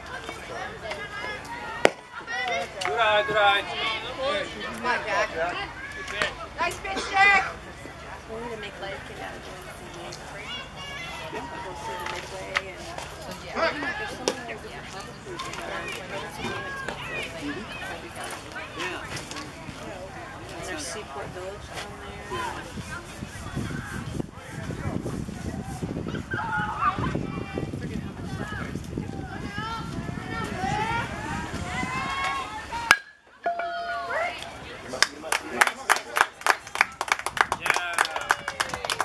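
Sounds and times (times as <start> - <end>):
indistinct chatter: 0.0 - 39.0
spectators talking: 0.0 - 39.0
bat hitting baseball: 32.9 - 34.1.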